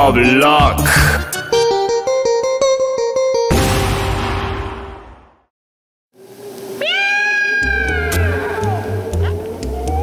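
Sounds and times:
music: 0.0 - 5.5, 7.6 - 10.0
cat yowl: 6.8 - 10.0.

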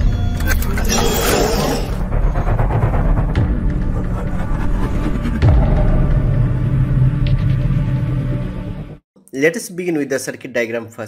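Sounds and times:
deep rumbling drone: 0.0 - 8.8.

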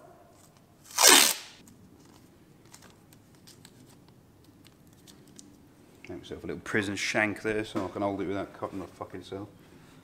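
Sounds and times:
masking tape ripped off roll: 0.8 - 1.6.

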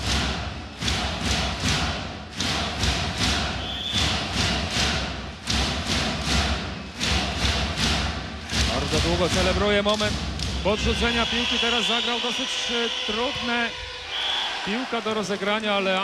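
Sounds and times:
crowd clapping and drumming: 0.0 - 16.0
crowd noise: 10.6 - 16.0.

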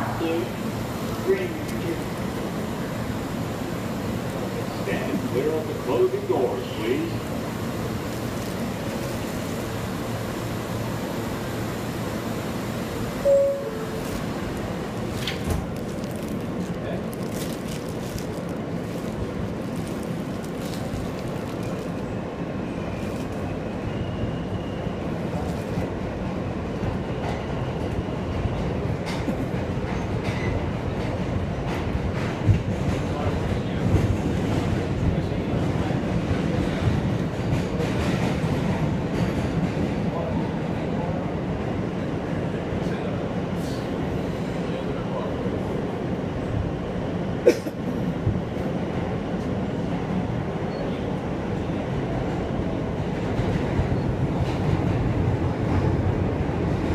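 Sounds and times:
train motor and wheel noise: 0.0 - 56.9
two-tone door chime: 13.3 - 14.0.

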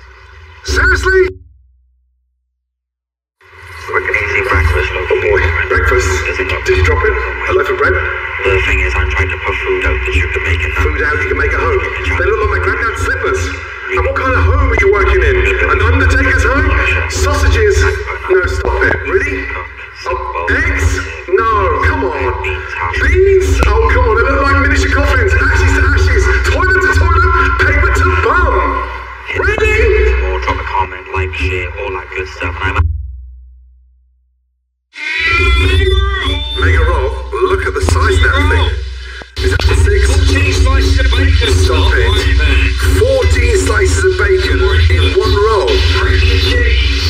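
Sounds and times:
person speaking: 3.9 - 32.8, 35.0 - 47.0
person talking: 3.9 - 32.8, 35.0 - 47.0.

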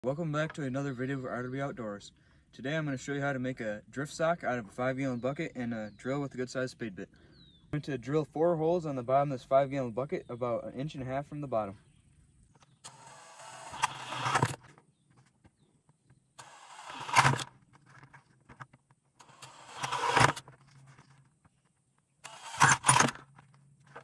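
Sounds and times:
cordless drill boring plastic: 12.8 - 14.6, 16.4 - 17.5, 19.2 - 20.5, 22.2 - 23.4.

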